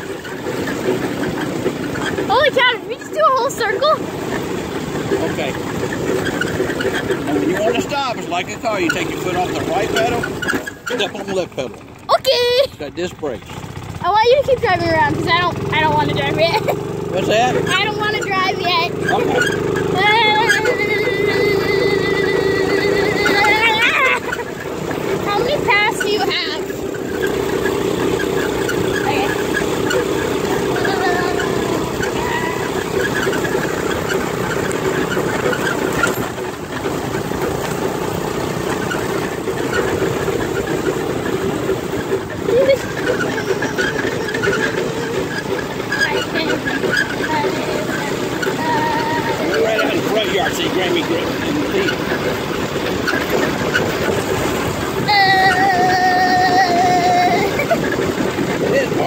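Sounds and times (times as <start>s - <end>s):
go-kart engine running: 0.0s - 59.0s
road noise on rough ground: 0.0s - 59.0s.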